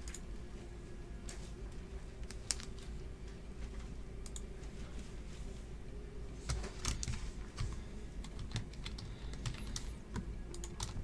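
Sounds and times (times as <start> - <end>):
typing on computer keyboard: 6.5 - 11.0.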